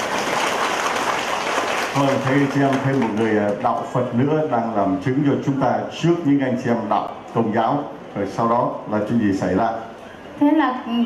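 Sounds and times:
crowd clapping: 0.0s - 4.3s.

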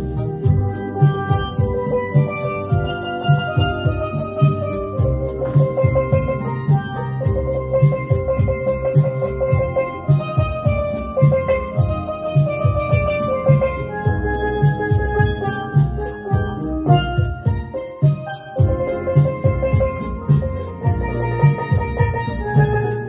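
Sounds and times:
low beat: 0.0s - 23.0s
maracas shaking: 0.0s - 23.0s
steel pan melody: 0.0s - 23.0s.

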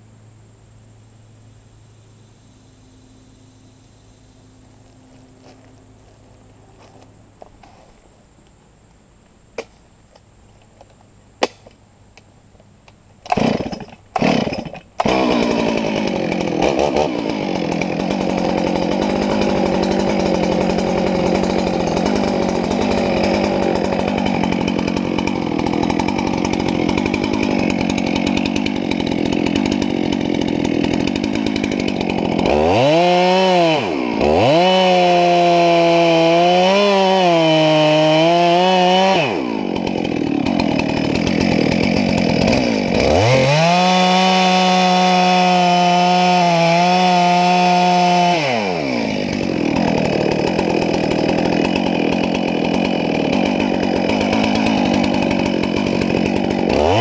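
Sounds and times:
chainsaw cutting wood: 13.2s - 57.0s.

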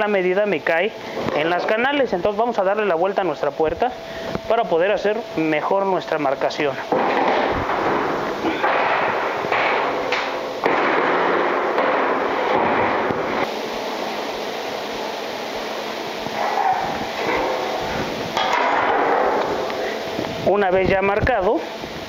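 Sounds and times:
sheet metal rattling and clanking: 6.9s - 13.3s.

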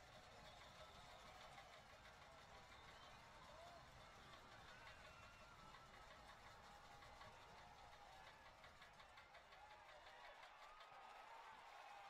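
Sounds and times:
distant voices in stadium: 0.0s - 12.0s.

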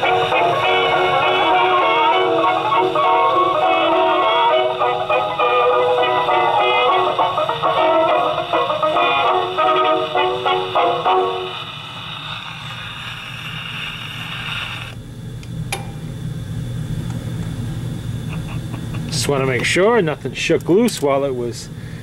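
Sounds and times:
gramophone record music: 0.0s - 14.9s
needle surface hiss: 9.4s - 15.0s.

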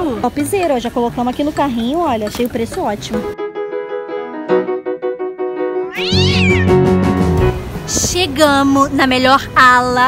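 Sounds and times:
high cat-like meow: 5.9s - 6.8s.

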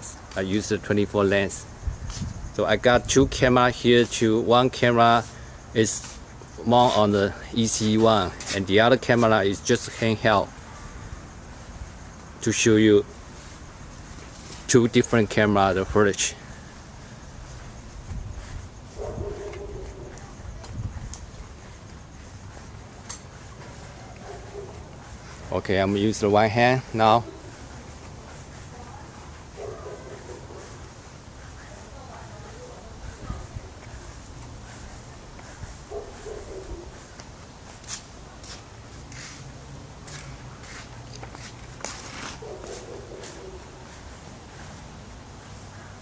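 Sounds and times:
outdoor background noise: 0.0s - 46.0s
soft footsteps: 16.6s - 45.6s.

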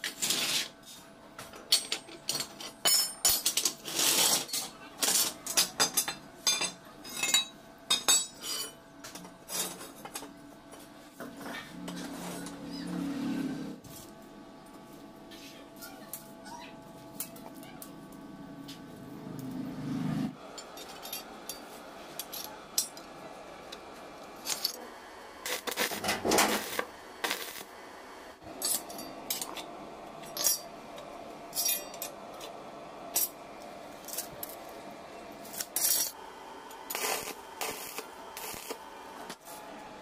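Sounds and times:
arc welding crackling: 0.0s - 0.8s, 3.5s - 5.6s, 21.4s - 30.7s, 31.3s - 39.8s.

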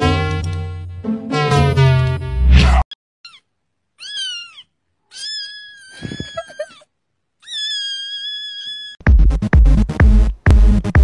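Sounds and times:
cat meowing: 3.2s - 6.8s, 7.4s - 9.0s.

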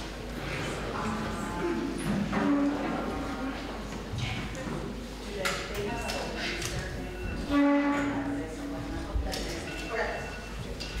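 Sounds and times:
wind instrument holding a note: 7.5s - 8.9s.

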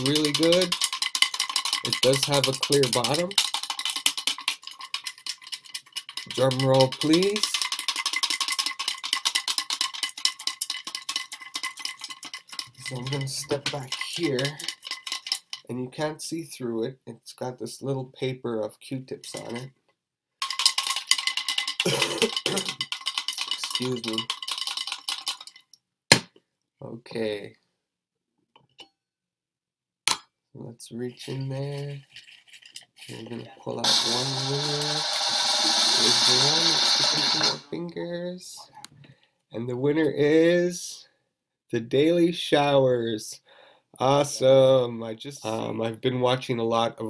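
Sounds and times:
paper slips rattling in glass jar: 0.0s - 15.7s, 20.4s - 25.7s, 31.4s - 37.7s.

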